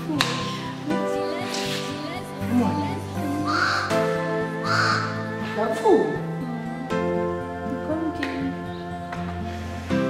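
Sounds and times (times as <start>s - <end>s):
soft background music: 0.0s - 10.0s
harsh caw-like call: 3.5s - 5.4s.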